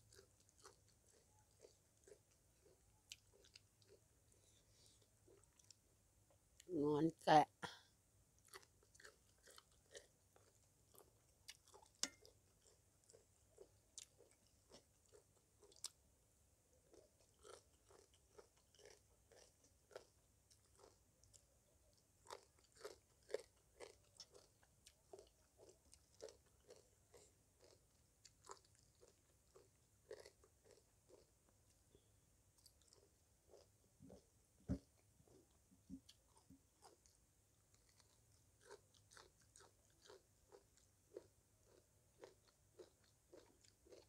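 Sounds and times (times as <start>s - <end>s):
chewing crunches and mouth clicks: 0.0s - 5.9s, 8.4s - 16.0s, 16.8s - 44.0s.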